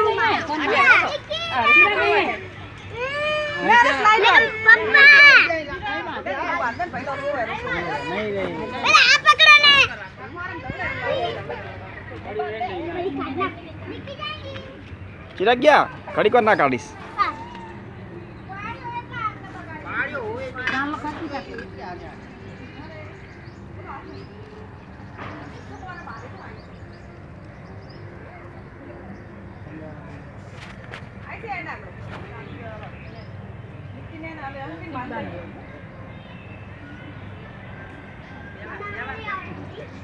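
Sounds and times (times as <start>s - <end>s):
adults and children talking: 0.0s - 40.0s.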